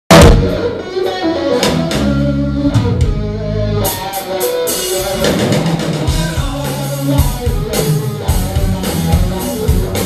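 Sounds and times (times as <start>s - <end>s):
electric guitar: 0.1s - 10.0s
live rock music: 0.1s - 10.0s
drum and cymbal hits: 4.7s - 10.0s.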